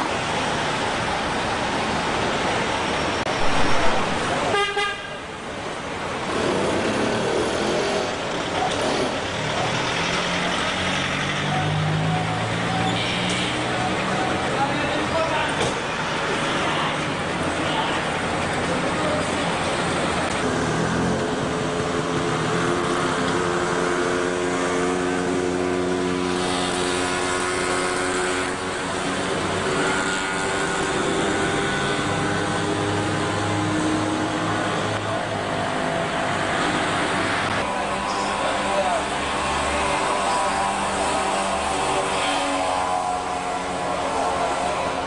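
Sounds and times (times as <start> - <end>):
street noise: 0.0 - 45.0
vehicle engine humming: 0.0 - 45.0
voices: 37.5 - 45.0.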